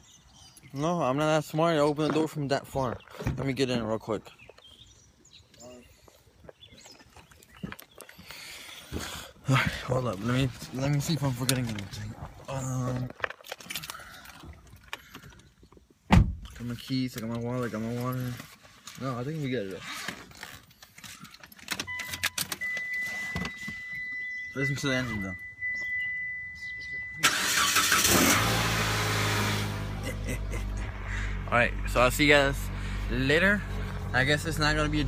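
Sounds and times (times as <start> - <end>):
keys and ignition clicking: 20.4 - 27.7.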